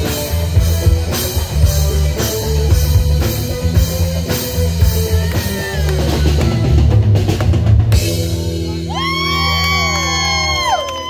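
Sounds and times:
live band holding chord: 0.0s - 9.2s
audience whooping: 5.0s - 6.6s, 8.8s - 11.0s.

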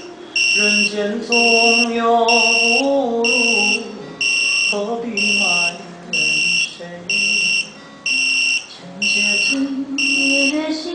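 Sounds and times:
alarm clock buzzer beeping: 0.0s - 10.6s
song with singing: 0.0s - 10.9s.

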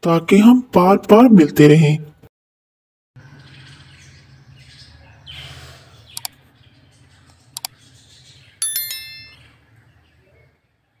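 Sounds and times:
bright bell-like chime: 8.6s - 9.6s.

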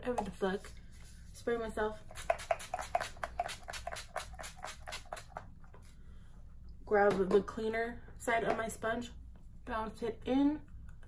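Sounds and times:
spray bottle spritzing: 2.1s - 5.4s.

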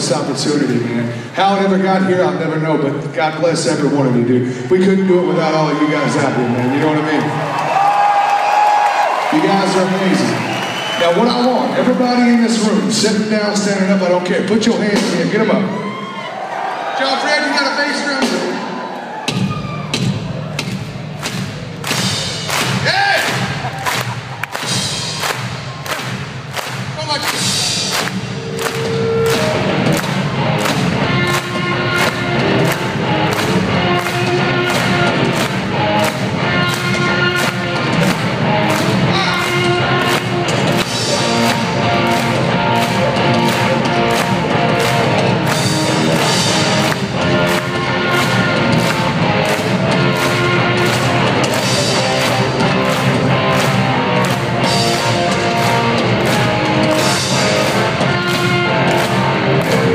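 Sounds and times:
bass drum beat: 19.3s - 59.9s
live rock band playing: 19.7s - 59.9s.

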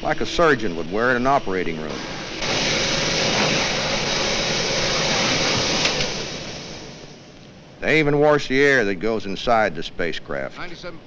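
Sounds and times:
blower whirring rush of air: 0.0s - 7.3s.

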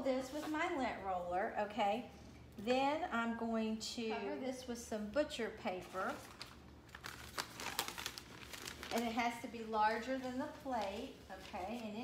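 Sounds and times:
paper rustling and crinkling: 5.7s - 12.0s.

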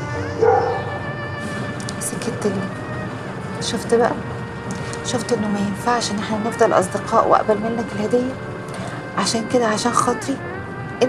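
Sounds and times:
drama score with held tones: 0.0s - 11.0s.

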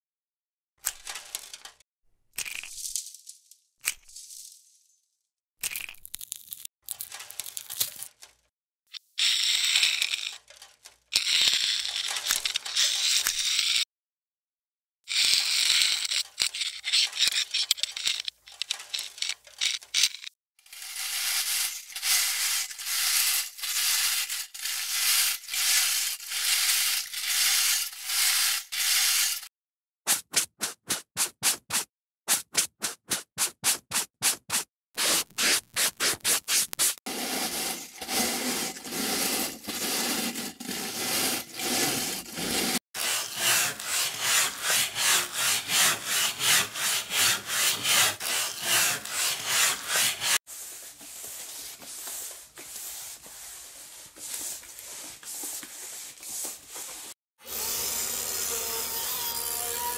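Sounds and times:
metal scraper scraping rust: 15.1s - 29.5s, 35.0s - 50.4s.

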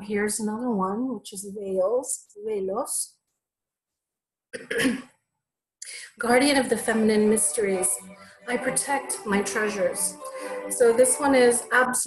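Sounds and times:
woman clearing her throat: 4.6s - 5.1s.

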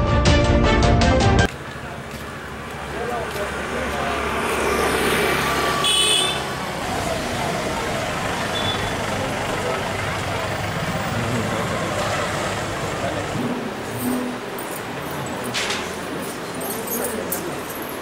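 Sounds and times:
street traffic noise: 1.0s - 18.0s
voices: 1.5s - 18.0s.

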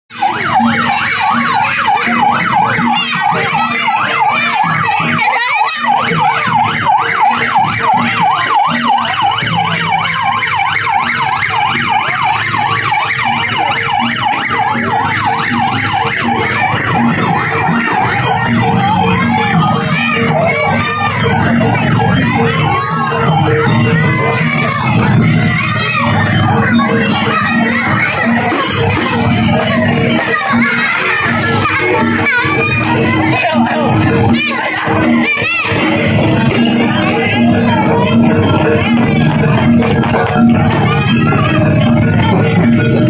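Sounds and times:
electronic siren yelping: 0.1s - 43.0s.

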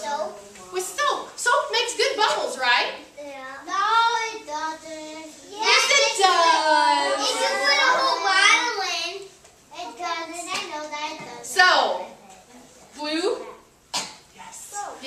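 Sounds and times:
children talking and calling out: 0.0s - 1.4s, 3.0s - 13.7s.

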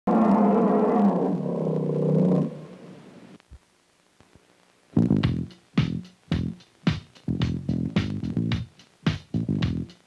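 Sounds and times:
tiger roaring: 0.1s - 3.0s.

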